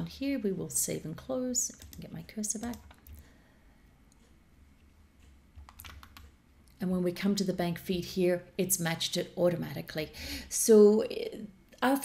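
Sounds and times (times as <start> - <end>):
woman speaking: 0.0 - 2.9, 6.8 - 12.0
computer clicks: 1.7 - 3.2, 5.2 - 6.4.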